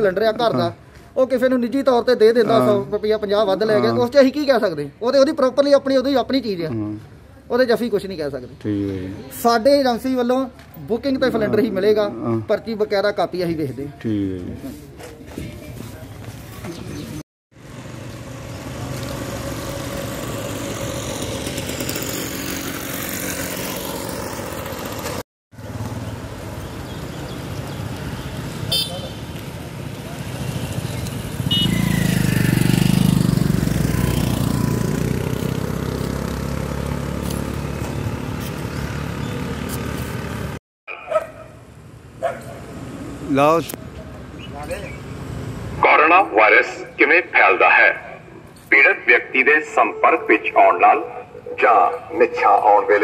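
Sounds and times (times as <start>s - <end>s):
traffic noise: 0.0s - 53.0s
vehicle passing: 17.6s - 27.4s, 29.6s - 40.6s, 46.7s - 53.0s.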